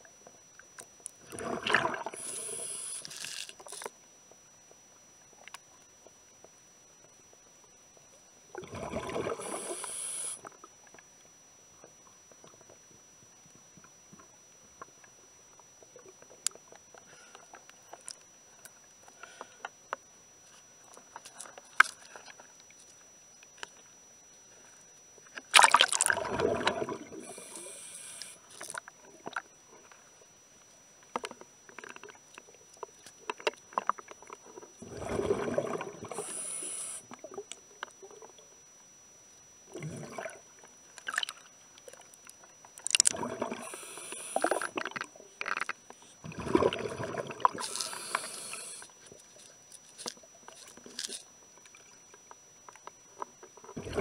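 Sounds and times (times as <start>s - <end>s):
bubbly exhalations: 1.2s - 2.8s, 8.6s - 9.8s, 25.6s - 27.6s, 34.8s - 36.4s, 39.7s - 40.4s, 43.0s - 45.6s, 46.2s - 48.7s, 53.8s - 54.0s
diver breathing through regulator: 2.1s - 3.2s, 9.3s - 10.4s, 27.2s - 28.4s, 36.1s - 37.0s, 43.5s - 44.8s, 47.6s - 48.9s
underwater clicks and pops: 42.8s - 43.3s.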